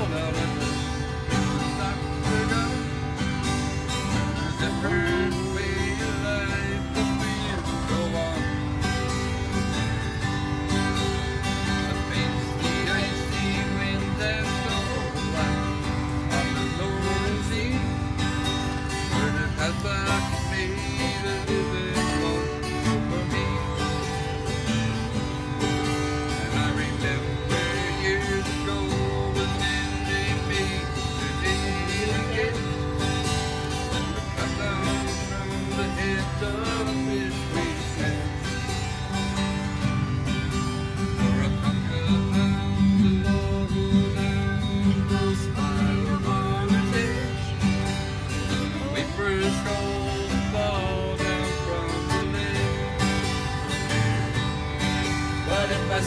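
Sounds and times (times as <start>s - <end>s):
mandolin picked melody: 0.0s - 56.0s.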